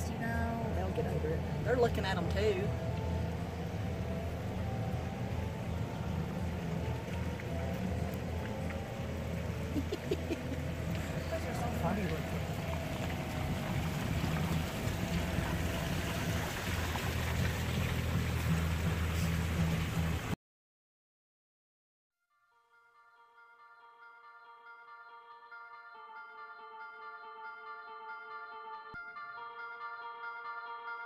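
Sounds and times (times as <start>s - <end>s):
car engine idling: 0.0s - 20.4s.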